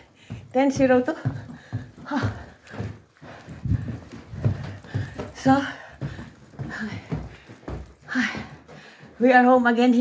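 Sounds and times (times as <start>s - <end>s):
footsteps thudding: 0.0s - 10.0s
rustling near microphone: 0.0s - 10.0s.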